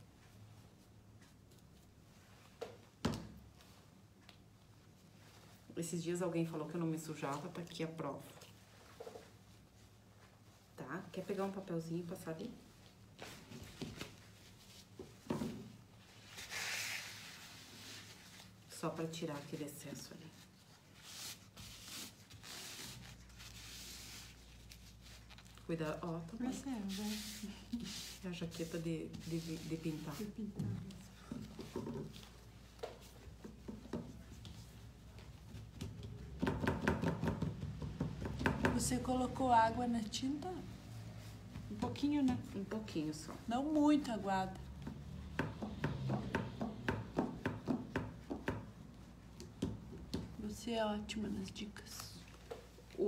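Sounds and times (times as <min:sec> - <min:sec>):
paper towel rustling: 0:15.8 - 0:33.4
cloth dabbing on painted frame: 0:20.2 - 0:36.4.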